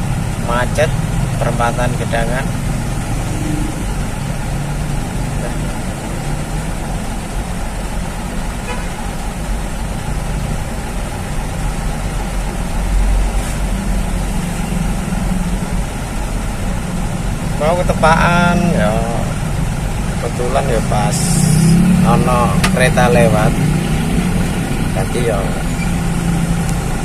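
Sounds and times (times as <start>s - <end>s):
surrounding traffic noise: 0.0s - 27.0s
vehicle engine running: 0.0s - 27.0s.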